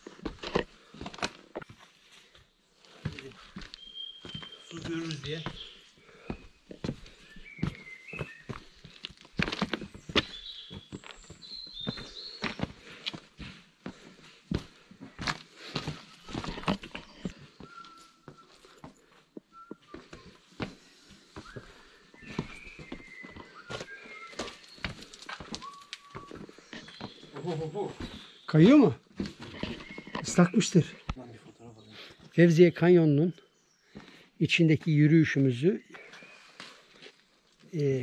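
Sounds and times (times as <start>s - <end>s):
footsteps crunching on stones: 0.0s - 31.2s
birds chirping: 0.0s - 38.0s.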